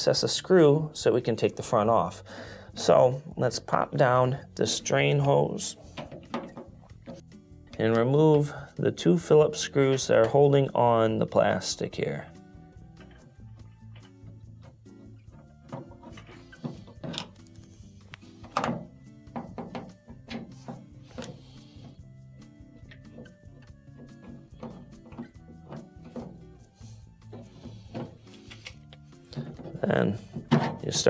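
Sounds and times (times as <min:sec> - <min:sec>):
quiet background music: 0:00.0 - 0:31.0.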